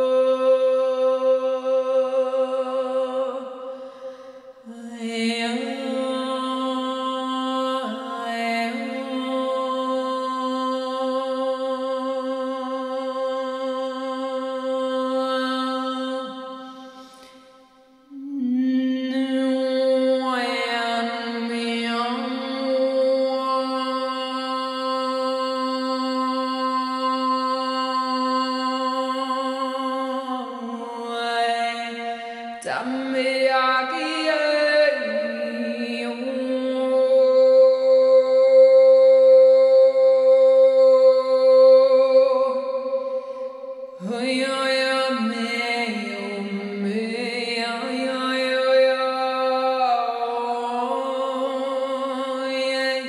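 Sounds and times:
woman chanting a long note: 18.1s - 32.0s.

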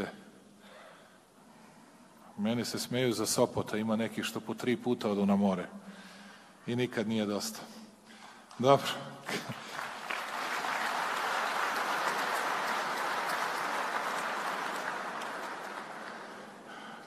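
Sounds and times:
audience applauding: 9.3s - 17.0s.

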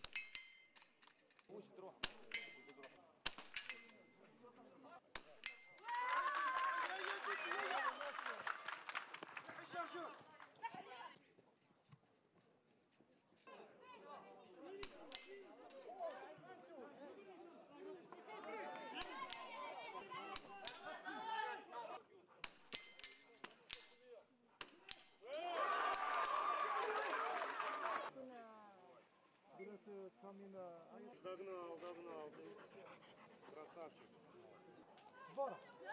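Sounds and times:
people talking: 5.9s - 8.5s.

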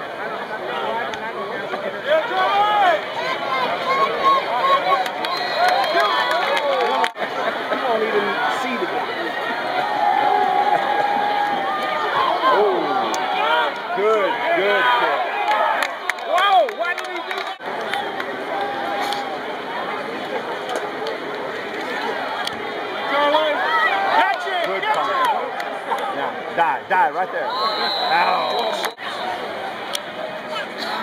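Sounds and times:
crowd shouting and cheering: 0.0s - 31.0s.

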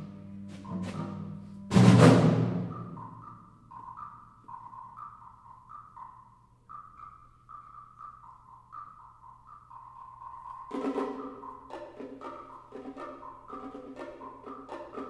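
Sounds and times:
concert band playing: 0.0s - 3.3s.

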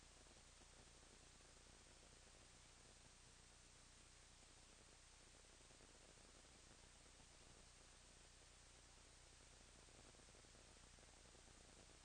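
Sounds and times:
faint steady hiss: 0.0s - 12.0s
low electrical hum: 0.0s - 12.0s.

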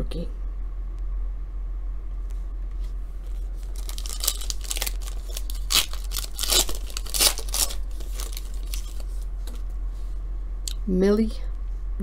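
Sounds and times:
foil wrapper tearing and crinkling: 3.3s - 9.2s.

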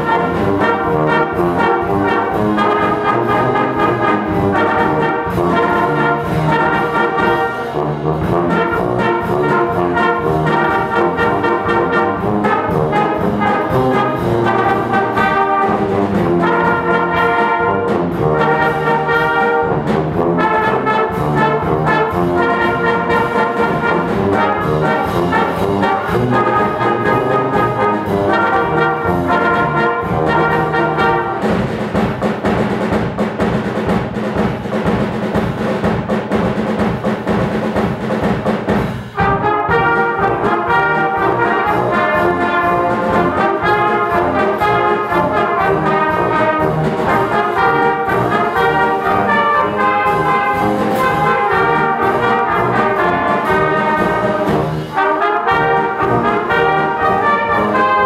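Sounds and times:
brass band playing a march: 0.0s - 58.0s.

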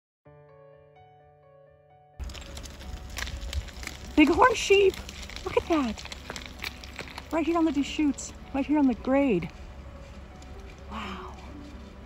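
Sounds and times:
soft background music: 2.2s - 12.0s
wind rumbling on microphone: 2.2s - 12.0s.

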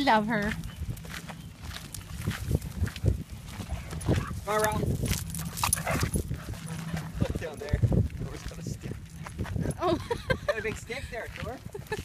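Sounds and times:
dog paws crunching on gravel: 0.0s - 12.0s
footsteps on gravel: 0.0s - 12.0s.

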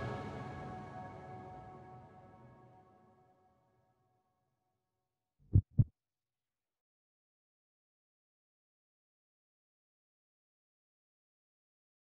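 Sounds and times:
deep thumps: 5.5s - 5.9s.

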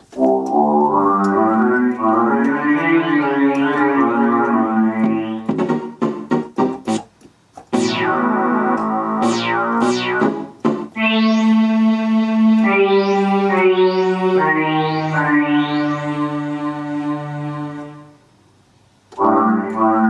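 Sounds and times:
held synth chords: 0.1s - 7.1s, 7.7s - 18.3s, 19.2s - 20.0s
synth pitch sweeps: 0.5s - 5.9s, 7.7s - 18.2s, 19.2s - 20.0s
percussive keyboard hits: 3.5s - 9.0s.

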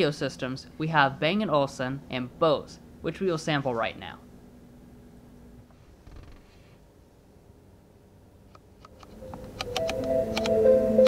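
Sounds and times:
sharp clicks: 8.5s - 10.6s
music from car sound system: 9.2s - 11.0s.

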